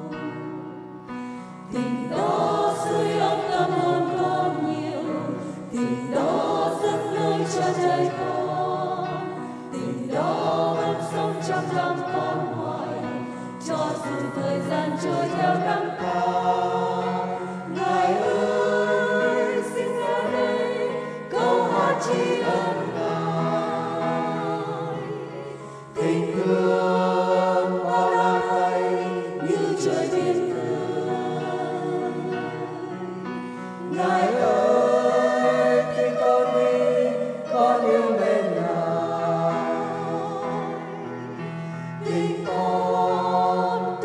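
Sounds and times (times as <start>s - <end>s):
choir singing a hymn: 0.0s - 44.0s.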